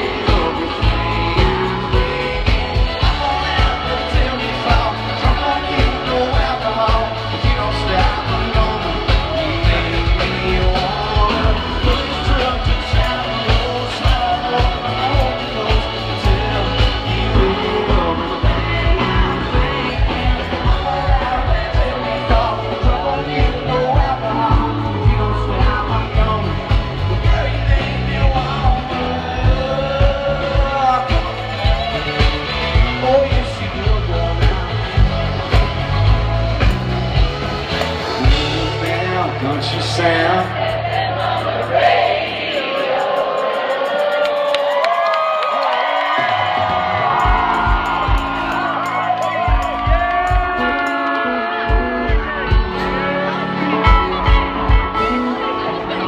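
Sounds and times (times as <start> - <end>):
person singing: 0.0 - 36.8, 37.8 - 44.8, 46.1 - 56.0
steady drum beat: 0.0 - 55.3
live country band playing: 0.0 - 56.0.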